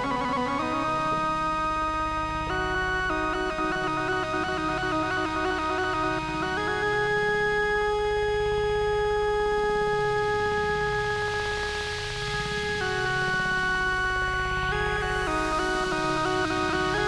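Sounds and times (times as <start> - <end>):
sustained synth chord: 0.0 - 17.0
noise hiss: 10.1 - 17.0.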